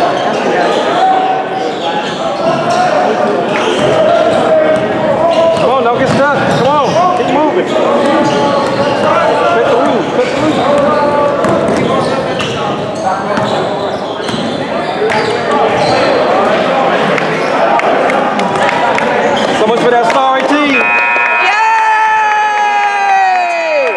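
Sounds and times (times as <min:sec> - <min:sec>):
echoing voices: 0:00.0 - 0:23.9
scoreboard horn blaring: 0:20.6 - 0:23.9.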